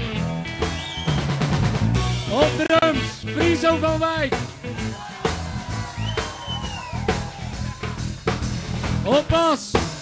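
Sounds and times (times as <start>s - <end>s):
steady bass line: 0.0s - 10.0s.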